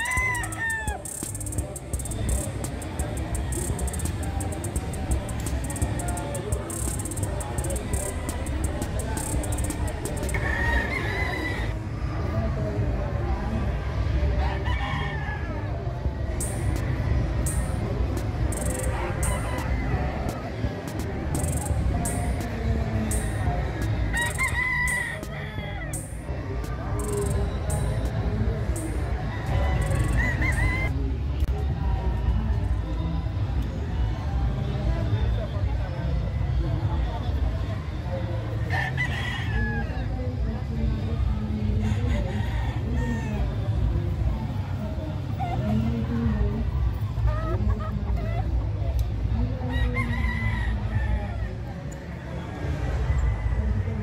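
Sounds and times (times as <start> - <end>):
rooster crowing: 0.0 - 2.4, 9.0 - 11.8, 24.1 - 26.1.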